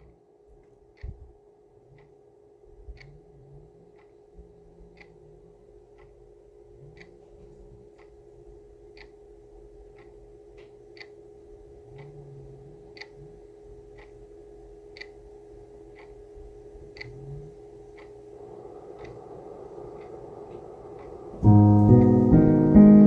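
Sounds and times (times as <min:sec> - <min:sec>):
clock ticking: 0:00.0 - 0:23.0
faint steady drone: 0:00.0 - 0:23.0
guitar and piano music: 0:21.4 - 0:23.0.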